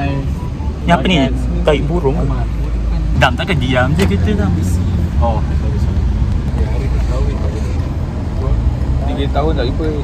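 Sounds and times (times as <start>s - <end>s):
road and engine rumble: 0.0s - 10.0s.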